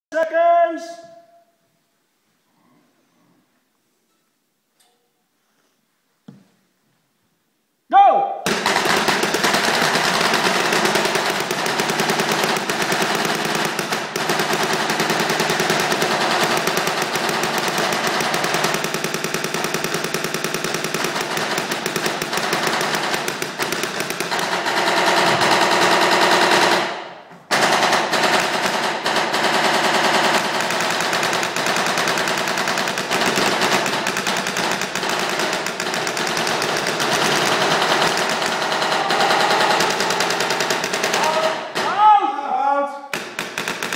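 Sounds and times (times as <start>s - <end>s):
paintball markers firing rapidly: 8.5s - 42.2s, 43.1s - 43.9s.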